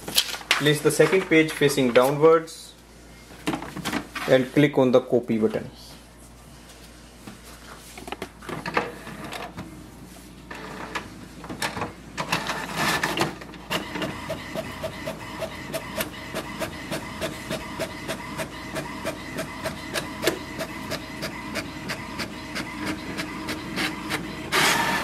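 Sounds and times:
printer paper feed rush: 12.4s - 25.0s
printer motor hum: 13.6s - 25.0s.

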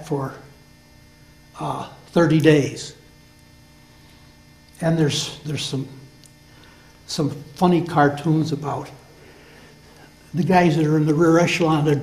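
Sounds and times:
man speaking: 0.0s - 0.5s, 1.6s - 3.0s, 4.8s - 6.1s, 7.1s - 9.0s, 10.3s - 12.0s
faint electrical hum: 0.0s - 12.0s.

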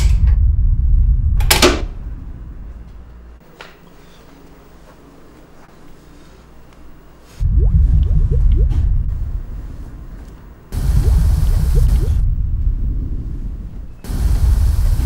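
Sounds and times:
deep rumbling booms: 0.0s - 2.7s, 7.4s - 15.0s
faint rising tones: 7.4s - 13.0s.

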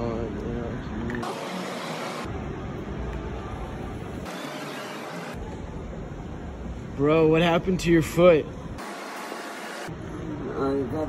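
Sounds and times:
low traffic rumble: 0.0s - 4.3s, 5.4s - 8.8s.

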